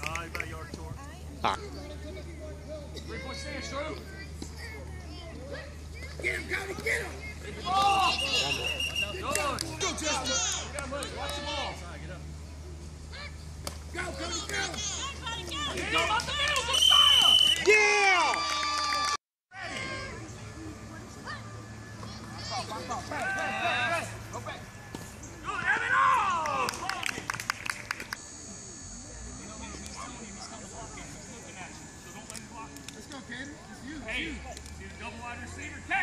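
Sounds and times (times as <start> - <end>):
faint high whine: 0.9 - 18.7, 19.6 - 36.0
sharp claps: 8.8 - 9.8, 26.3 - 28.2.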